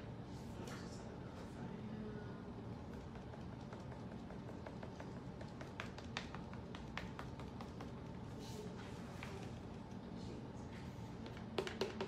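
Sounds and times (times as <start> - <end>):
paint dauber tapping: 2.8 - 8.2, 11.2 - 12.0.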